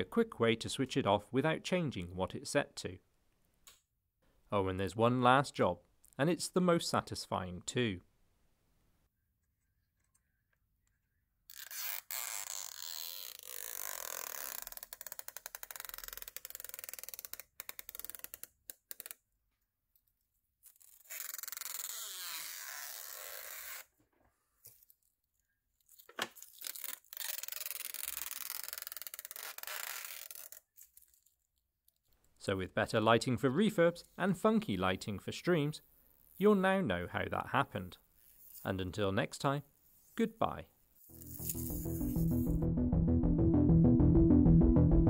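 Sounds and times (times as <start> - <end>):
plastic film peeling with crackle: 11.5 - 19.2, 24.7 - 32.2, 41.1 - 42.0.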